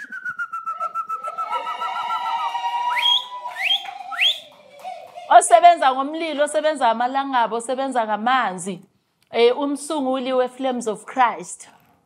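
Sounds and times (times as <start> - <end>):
held whistle note: 0.0 - 2.1, 2.7 - 5.2
quick rising whistles: 0.0 - 5.2.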